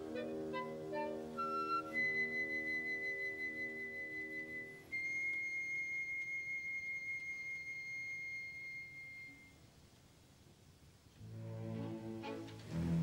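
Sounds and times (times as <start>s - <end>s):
orchestral ballet music: 0.0s - 5.5s, 11.2s - 13.0s
flute holding high note: 0.0s - 9.6s.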